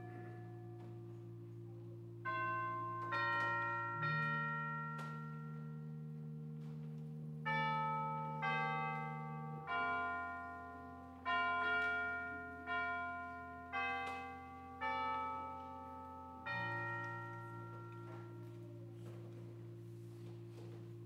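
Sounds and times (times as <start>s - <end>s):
church chimes melody: 0.0s - 21.0s.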